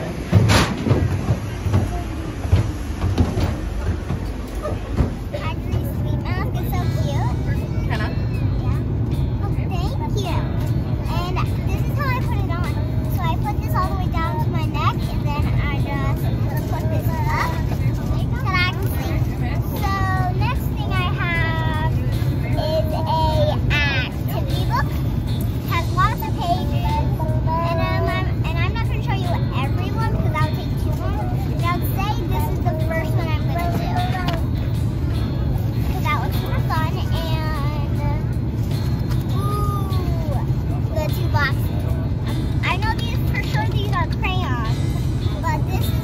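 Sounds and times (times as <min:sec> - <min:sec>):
airliner cabin drone: 0:00.0 - 0:46.0
girl talking: 0:04.6 - 0:46.0.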